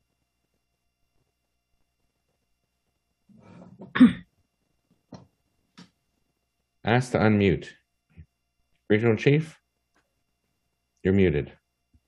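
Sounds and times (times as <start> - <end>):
person clearing throat: 3.6 - 4.3.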